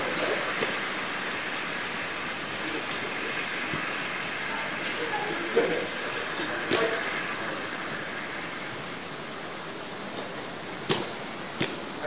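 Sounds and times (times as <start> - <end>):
rushing background noise: 0.0 - 12.0
ball being kicked: 10.8 - 11.9.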